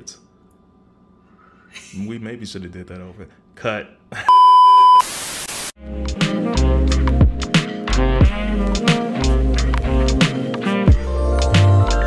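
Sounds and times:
electronic beep: 4.3 - 5.1
static hiss: 4.9 - 5.8
music: 5.8 - 12.0.

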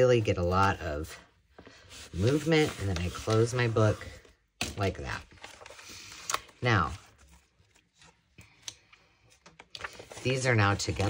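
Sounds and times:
book being handled: 1.4 - 11.0.

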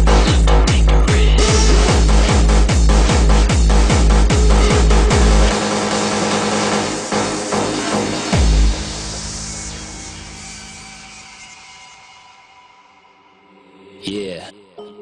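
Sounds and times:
distorted kick drum: 0.0 - 9.9
hardstyle dance music: 0.0 - 11.7
held synth tones: 4.1 - 6.8.

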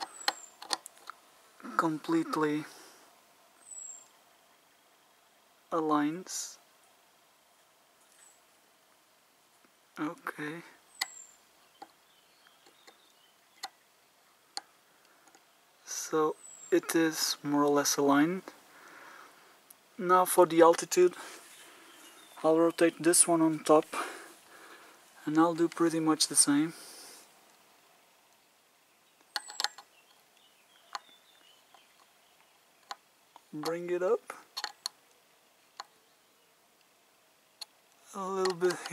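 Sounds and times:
scope adjustment clicks: 0.0 - 1.2, 29.3 - 29.9, 34.5 - 35.1.

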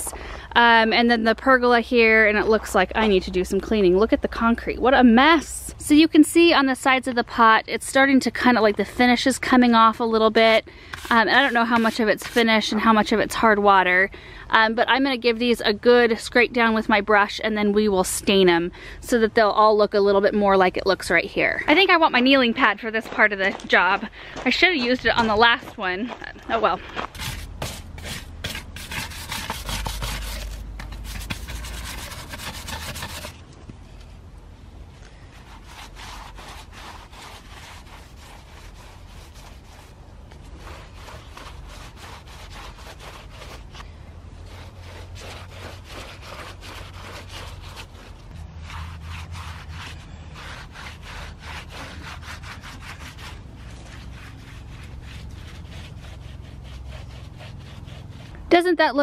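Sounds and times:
brush scrubbing wicker: 9.8 - 13.2, 26.6 - 33.4, 35.3 - 43.8, 44.4 - 58.4
rag rubbing on wicker: 10.3 - 13.2, 21.6 - 33.4, 35.3 - 43.8, 44.4 - 58.5.

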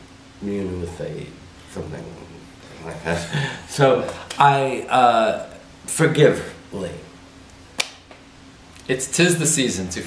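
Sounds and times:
person speaking: 0.6 - 7.1.

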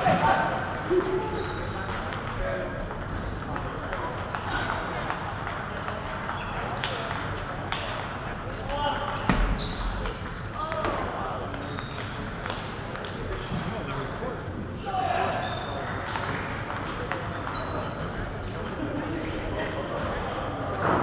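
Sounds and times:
murmur of voices: 0.0 - 21.0.

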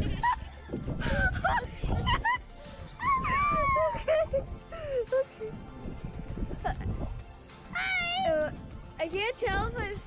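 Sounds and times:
wind buffeting microphone: 0.0 - 7.3, 8.0 - 10.0
girl squealing: 3.0 - 4.3, 7.7 - 8.5.

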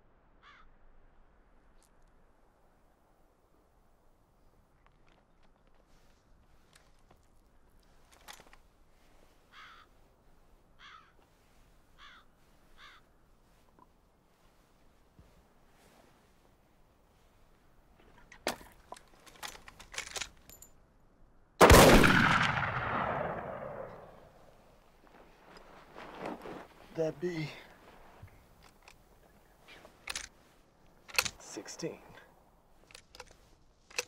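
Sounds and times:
bird calling faintly: 8.9 - 14.0
gunshot echoing: 21.6 - 24.4
sharp clicks and scuffs: 31.0 - 31.8, 32.8 - 34.0.

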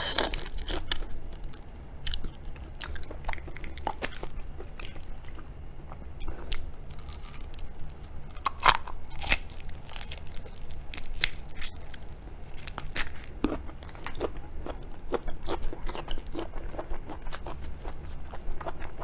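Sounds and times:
steady low hum: 0.0 - 19.0
biting and chewing prawn: 6.2 - 19.0.

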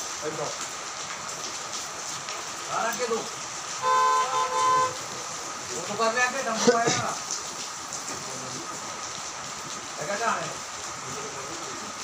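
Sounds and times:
truck horn honking: 3.8 - 5.1.

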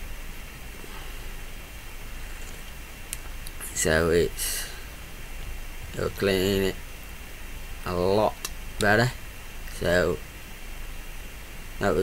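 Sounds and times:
recording hiss: 0.0 - 12.0.

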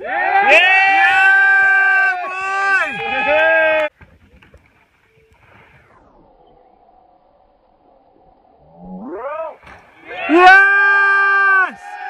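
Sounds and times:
person shouting: 9.3 - 11.8.

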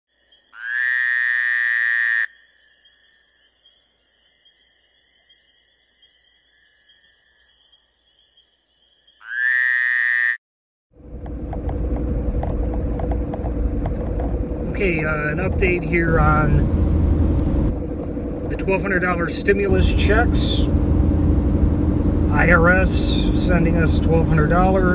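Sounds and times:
car interior rumble: 10.9 - 24.9
loud long pitched tones: 11.0 - 24.9.

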